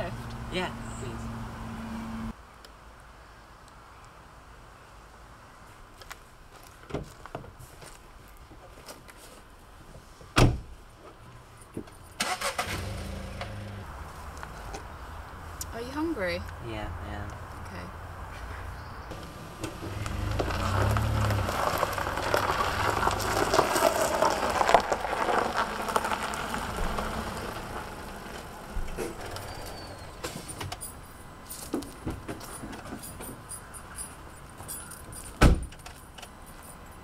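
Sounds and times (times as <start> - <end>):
car engine cranking: 12.2 - 13.8, 19.1 - 30.2.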